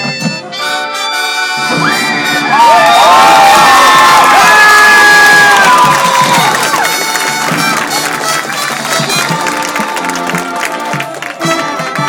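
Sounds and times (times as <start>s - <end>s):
stadium crowd cheering: 1.6s - 12.0s.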